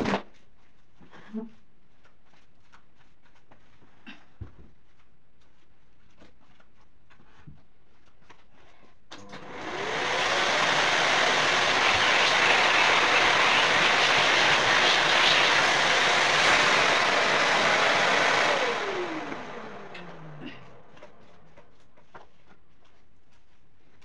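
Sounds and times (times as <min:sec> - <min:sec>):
vacuum cleaner motor running: 0:09.2 - 0:21.7.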